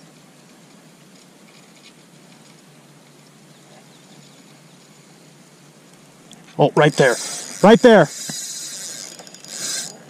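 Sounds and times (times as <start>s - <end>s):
fishing reel cranking whir: 6.8s - 10.0s.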